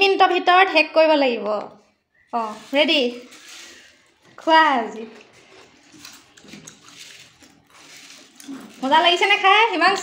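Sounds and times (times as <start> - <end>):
food being chewed: 3.2 - 10.0.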